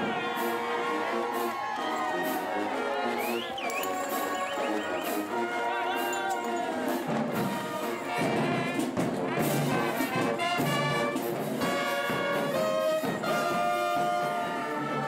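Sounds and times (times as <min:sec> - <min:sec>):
high whoop: 0:00.0 - 0:06.8
people cheering and clapping: 0:00.0 - 0:09.0, 0:09.6 - 0:15.0
marching band playing: 0:00.0 - 0:15.0.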